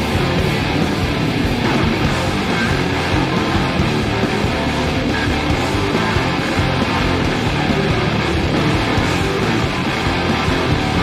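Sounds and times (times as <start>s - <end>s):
loud live rock band: 0.0s - 11.0s.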